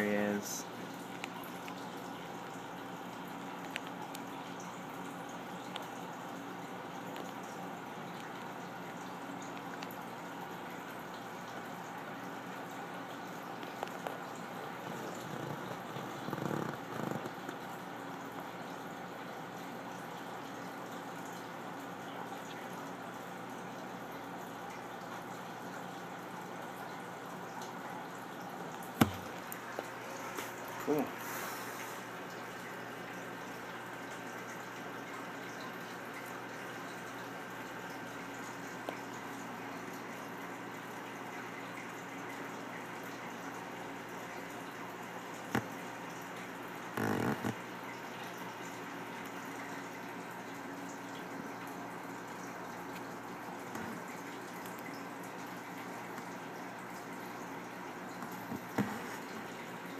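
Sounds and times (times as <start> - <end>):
low hum and hiss: 0.0 - 59.9.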